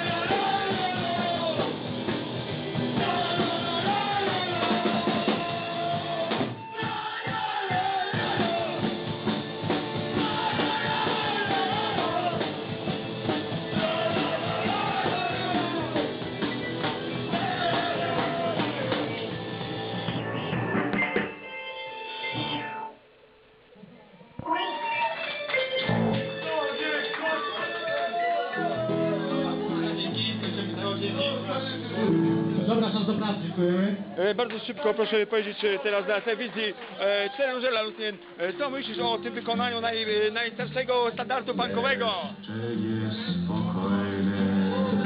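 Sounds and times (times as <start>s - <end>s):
punk rock band playing: 0.0s - 22.9s, 28.6s - 33.4s
guitar long held note: 20.0s - 23.0s.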